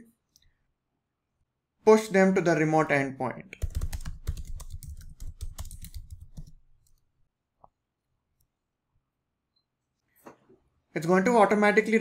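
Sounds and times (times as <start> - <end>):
rapid keyboard typing: 3.6 - 7.0.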